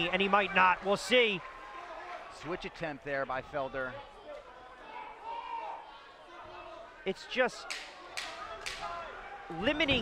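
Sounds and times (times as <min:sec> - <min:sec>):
arena crowd noise: 0:00.0 - 0:10.0
distant shouting and voices: 0:00.0 - 0:10.0.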